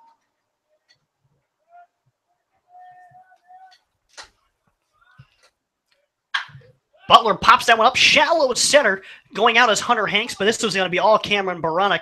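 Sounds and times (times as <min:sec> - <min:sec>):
faint distant voices: 0:01.6 - 0:03.9
commentator speaking: 0:07.0 - 0:12.0.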